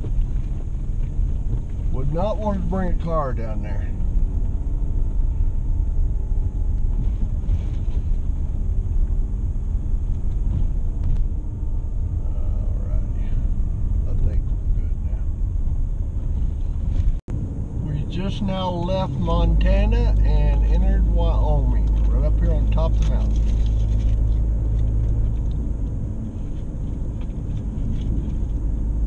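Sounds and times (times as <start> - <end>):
vehicle driving on gravel: 0.0 - 29.0.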